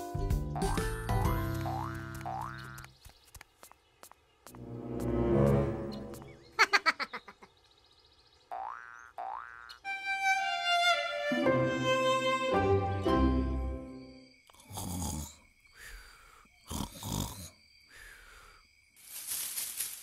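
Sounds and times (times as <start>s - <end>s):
soft music: 0.0s - 2.4s, 4.6s - 6.5s, 9.8s - 14.2s
springy cartoon boings: 0.6s - 2.9s, 8.5s - 9.8s.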